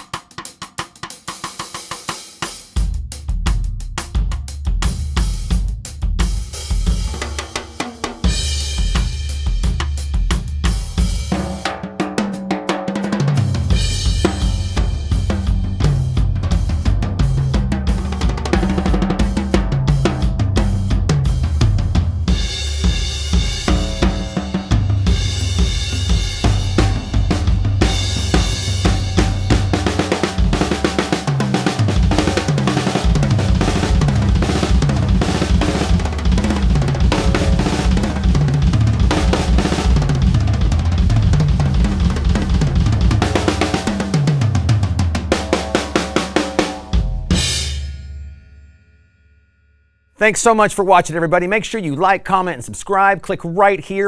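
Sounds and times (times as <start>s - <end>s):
drum kit solo: 0.0s - 48.8s
tom fills: 12.9s - 48.2s
choked crash cymbal: 45.4s - 49.4s.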